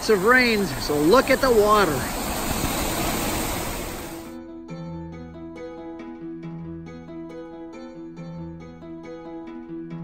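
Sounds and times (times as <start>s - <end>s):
rushing stream water: 0.0s - 4.4s
keyboard music with held notes: 4.4s - 10.0s.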